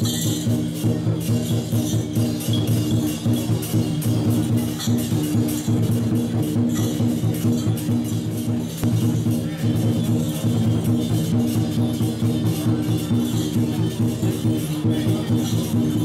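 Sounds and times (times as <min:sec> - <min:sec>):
procession music with sharp percussion: 0:00.0 - 0:16.0.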